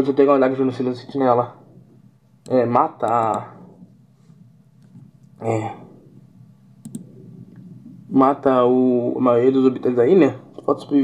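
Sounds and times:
faint low hum: 0.0s - 11.0s
sharp clicks: 6.8s - 7.7s.

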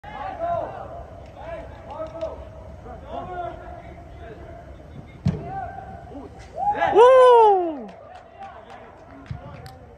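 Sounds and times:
distant shouts of players: 4.4s - 8.7s
soccer ball kick thud: 5.2s - 5.5s.

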